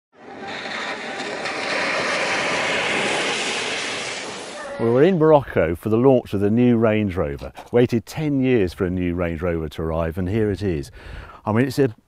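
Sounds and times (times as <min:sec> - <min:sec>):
car driving through water: 0:00.2 - 0:04.7
water spraying from tyres: 0:00.2 - 0:04.9.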